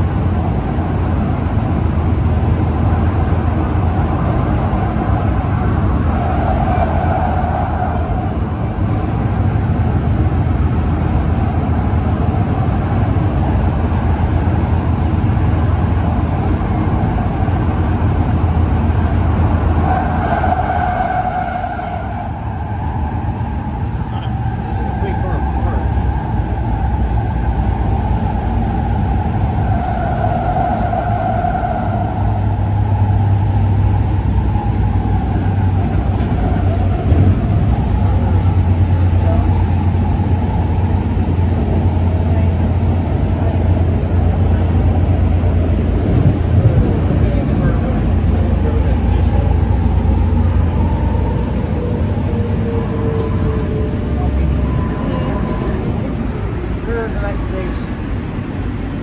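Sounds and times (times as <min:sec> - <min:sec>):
train wheels rumbling on track: 0:00.0 - 0:59.0.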